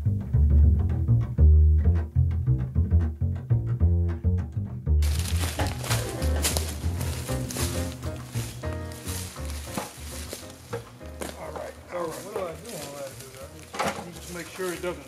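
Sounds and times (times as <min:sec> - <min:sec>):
plucked and bowed string music: 0:00.0 - 0:15.0
footsteps in dry leaves: 0:05.0 - 0:15.0.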